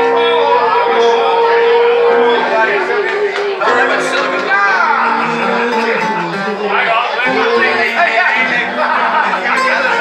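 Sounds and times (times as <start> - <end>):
acoustic guitar: 0.0 - 10.0
keyboard: 0.0 - 10.0
person singing: 0.0 - 10.0.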